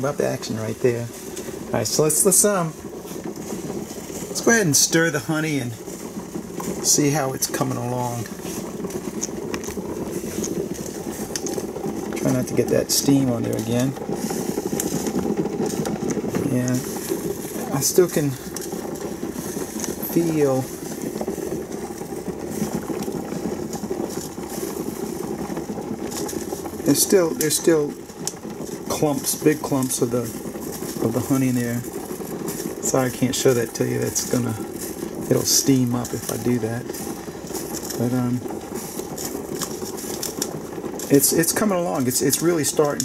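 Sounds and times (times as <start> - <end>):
thick honey being stirred: 0.0 - 43.0
utensil clicking and scraping: 0.0 - 43.0
water boiling in a pot: 0.0 - 43.0.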